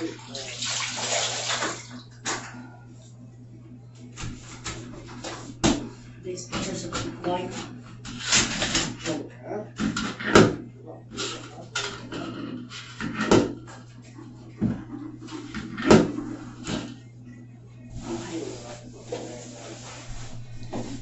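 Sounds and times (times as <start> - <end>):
steady low hum: 0.0 - 21.0
cloth rubbing a wall: 4.1 - 9.1, 17.9 - 21.0.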